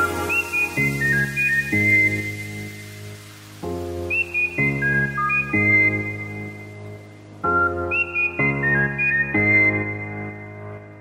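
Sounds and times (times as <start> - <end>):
melody over sustained chords: 0.0 - 11.0.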